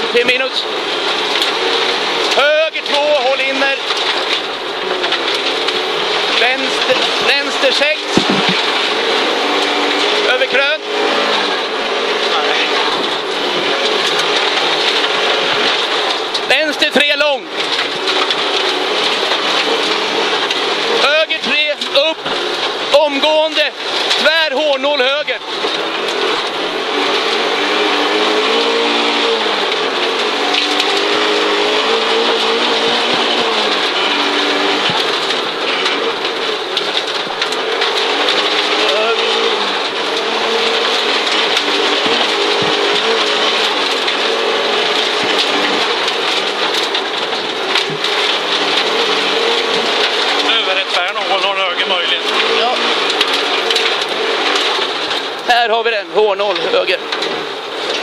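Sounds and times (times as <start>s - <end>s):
car engine revving: 0.0s - 58.0s
tyre and road noise: 0.0s - 58.0s.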